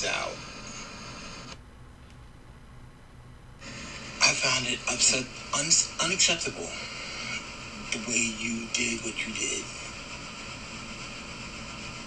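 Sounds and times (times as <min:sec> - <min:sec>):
background hiss: 0:00.0 - 0:12.0
low hum: 0:00.0 - 0:12.0.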